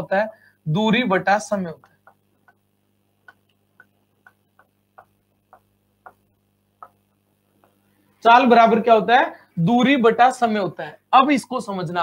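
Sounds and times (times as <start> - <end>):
stylus tapping on screen: 1.8 - 7.9.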